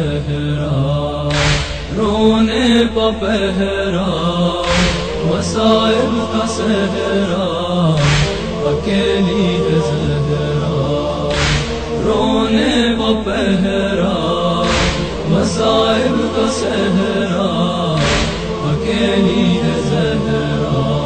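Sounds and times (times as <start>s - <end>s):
voices chanting a mourning lament: 0.0s - 21.0s
short sharp hiss: 11.3s - 12.0s.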